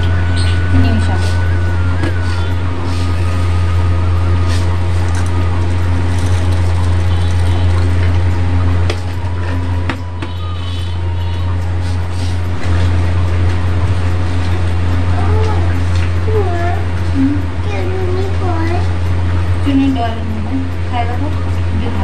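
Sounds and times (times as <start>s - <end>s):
loud steady low hum: 0.0s - 22.0s.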